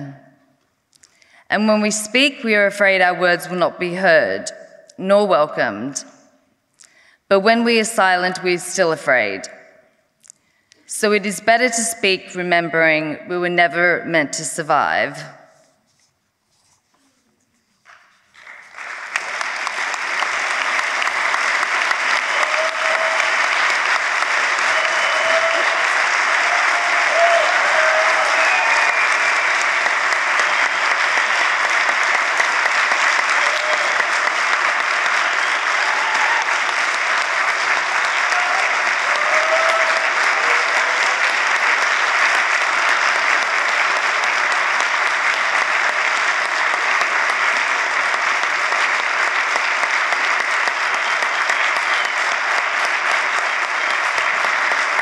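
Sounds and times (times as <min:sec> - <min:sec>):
large audience applauding: 0:17.8 - 0:55.0.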